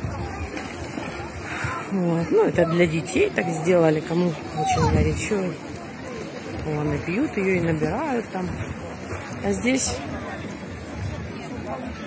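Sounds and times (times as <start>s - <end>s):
faint voices: 0.0s - 12.0s
pool water splashing: 0.0s - 12.0s.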